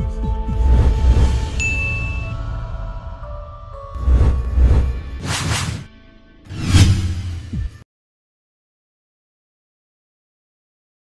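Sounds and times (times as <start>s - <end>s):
whoosh sweep: 0.5s - 2.4s, 4.0s - 5.9s, 6.5s - 7.8s.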